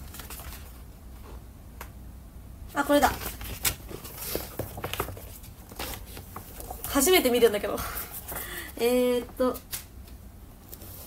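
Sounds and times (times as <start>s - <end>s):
paper pages rustling: 0.0s - 0.8s, 2.9s - 8.6s
low steady hum: 0.0s - 11.0s.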